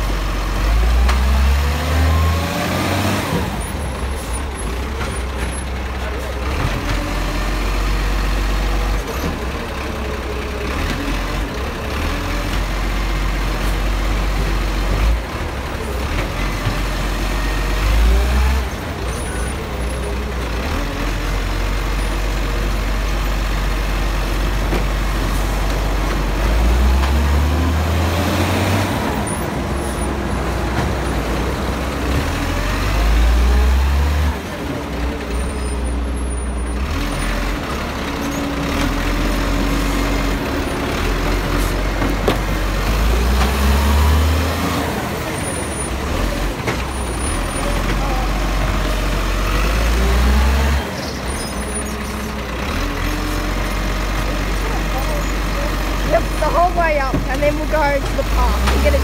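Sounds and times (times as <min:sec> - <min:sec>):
garbage truck diesel engine: 0:00.0 - 0:59.0.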